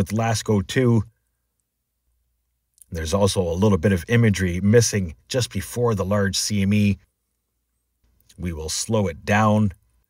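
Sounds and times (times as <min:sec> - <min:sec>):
man narrating: 0:00.0 - 0:01.1, 0:02.8 - 0:07.0, 0:08.3 - 0:09.8
faint click: 0:01.5 - 0:01.8.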